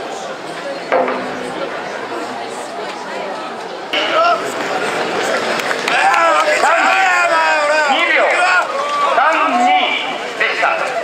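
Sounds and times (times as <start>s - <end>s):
crowd of men babbling: 0.0s - 11.0s.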